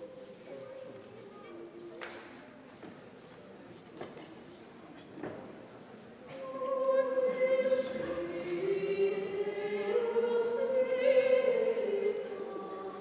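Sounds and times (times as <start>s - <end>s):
vocal ensemble singing unaccompanied: 6.3s - 13.0s.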